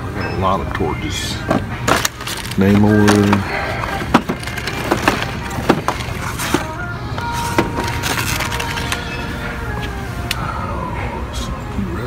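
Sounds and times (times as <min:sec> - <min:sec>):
plastic packaging crinkling: 0:01.9 - 0:09.0.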